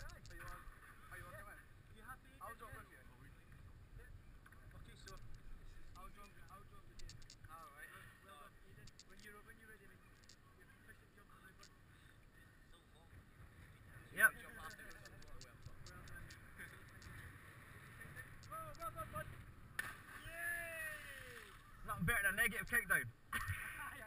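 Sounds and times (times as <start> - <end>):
loud shout: 20.2 - 21.6
people yelling: 20.2 - 21.6.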